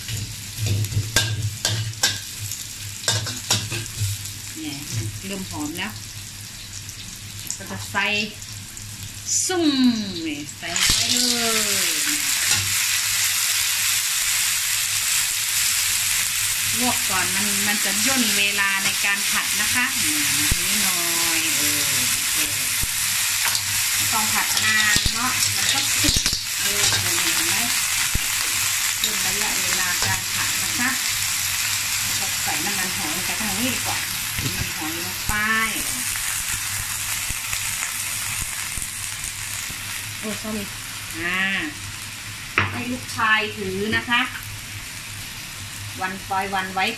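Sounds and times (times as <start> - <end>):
clams sizzling in oil: 0.0 - 46.9
metal spatula scraping wok: 23.4 - 27.7.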